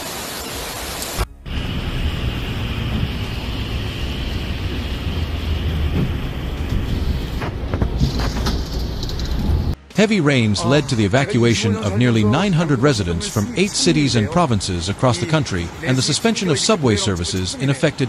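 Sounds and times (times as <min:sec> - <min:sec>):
heavy rain: 0:00.0 - 0:09.8.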